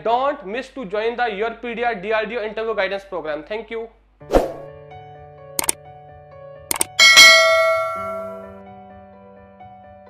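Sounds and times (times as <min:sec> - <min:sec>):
mouse button double clicks: 0:06.7 - 0:07.0
bell-like notification ding: 0:06.7 - 0:08.5.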